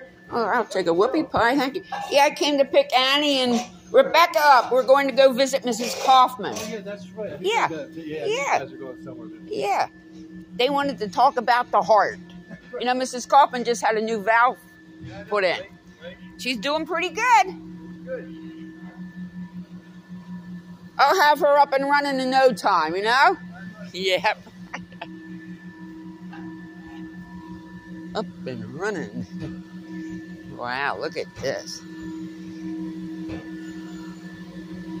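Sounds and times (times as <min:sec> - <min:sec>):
faint higher tones: 0:00.0 - 0:35.0
low wavering hum: 0:00.0 - 0:35.0.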